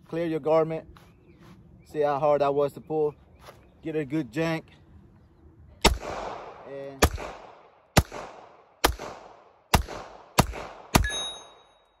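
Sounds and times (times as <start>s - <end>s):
pistol shots with echo: 5.8s - 11.7s.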